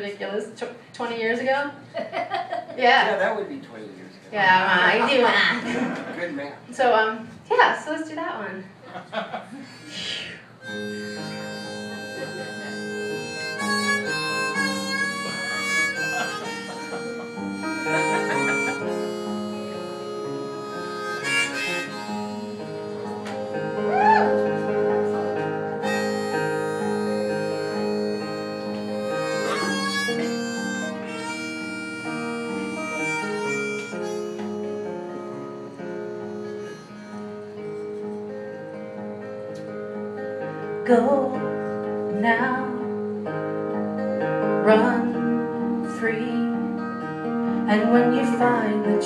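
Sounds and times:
harmonica long notes: 9.9s - 49.0s
acoustic guitar: 10.0s - 49.0s.

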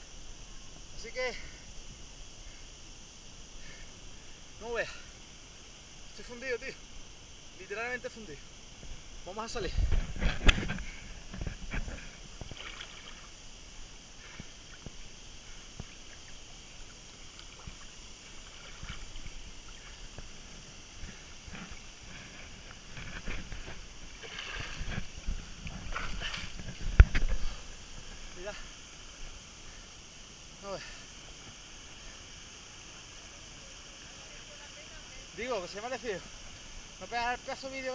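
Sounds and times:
water sloshing and splashing: 12.4s - 13.3s, 15.8s - 27.7s.

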